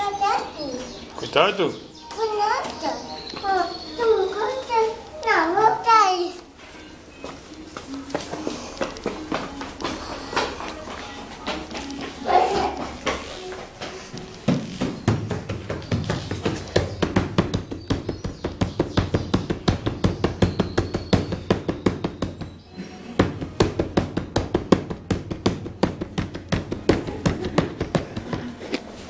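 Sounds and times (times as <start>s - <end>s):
rapid drumming: 14.8s - 22.6s, 23.2s - 28.5s.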